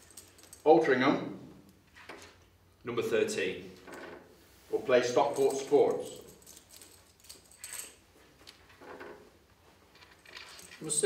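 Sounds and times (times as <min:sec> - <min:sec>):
tokens shifting in a bag: 0:00.0 - 0:00.7, 0:05.2 - 0:08.0, 0:09.9 - 0:11.0.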